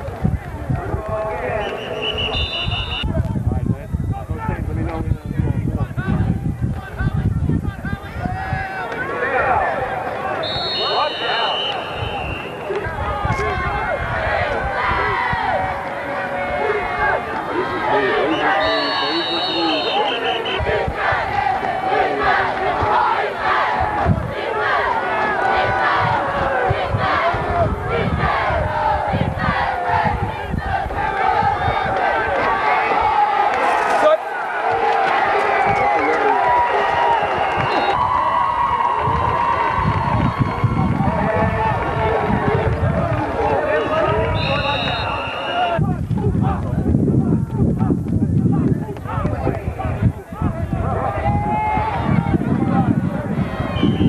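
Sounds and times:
crowd shouting and cheering: 0.0 - 54.0.

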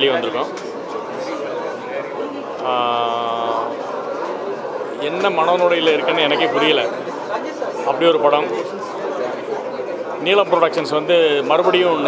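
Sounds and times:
crowd chatter: 0.0 - 12.0
man talking into microphones: 5.0 - 7.0, 10.2 - 12.0.

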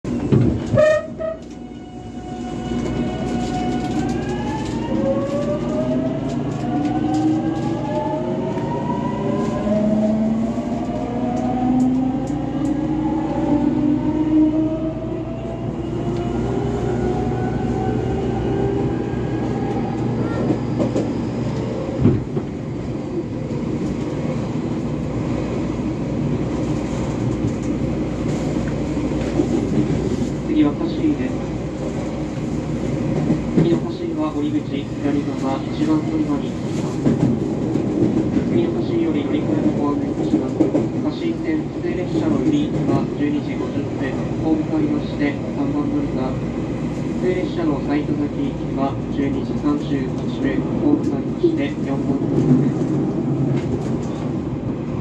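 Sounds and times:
wheels rumbling on rail: 0.1 - 55.0.

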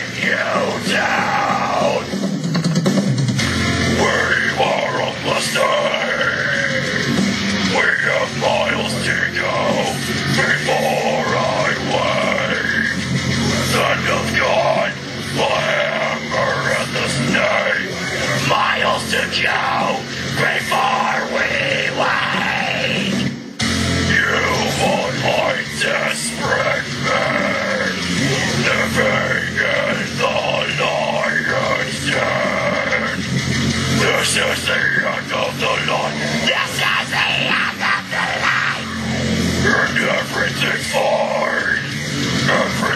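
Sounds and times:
guttural growled vocals: 0.0 - 2.1, 4.0 - 23.3, 24.1 - 33.3, 34.0 - 42.9
heavy metal backing track: 0.0 - 42.9.

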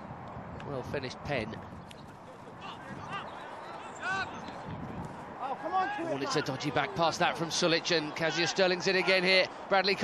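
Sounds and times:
players shouting: 2.3 - 4.6, 5.4 - 10.0.

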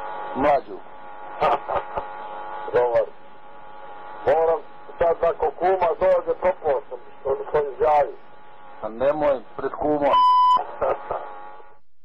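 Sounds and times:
man's voice over phone line: 0.4 - 0.8, 2.7 - 3.1, 4.3 - 8.2, 8.8 - 10.3
high censor beep: 10.1 - 10.7.

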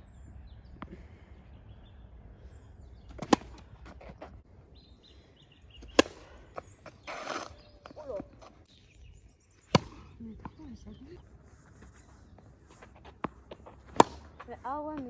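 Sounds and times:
tennis ball hit with racket: 3.1 - 3.7, 5.8 - 8.2, 9.7 - 10.6, 13.6 - 14.4.

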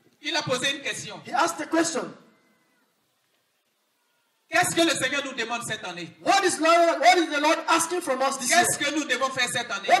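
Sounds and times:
man's voice with echo: 0.2 - 2.2, 4.5 - 10.0.

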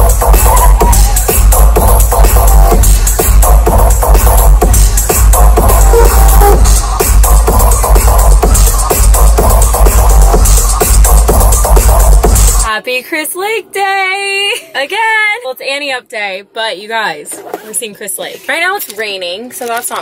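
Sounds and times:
loud electronic dance music: 0.0 - 12.7.

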